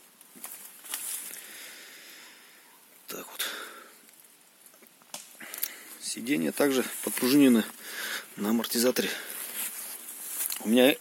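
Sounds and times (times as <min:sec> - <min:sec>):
rustling on dry leaves: 0:00.0 - 0:01.7, 0:05.4 - 0:11.0.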